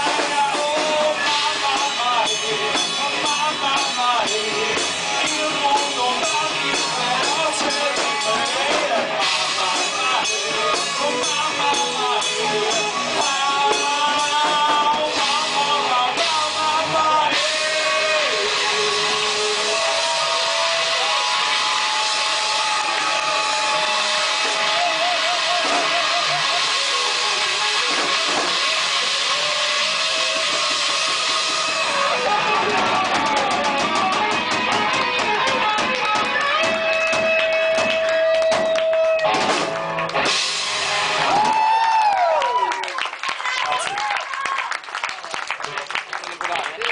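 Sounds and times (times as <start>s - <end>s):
drum kit and cymbals: 0.0s - 42.3s
lead guitar wavering notes: 16.8s - 41.3s.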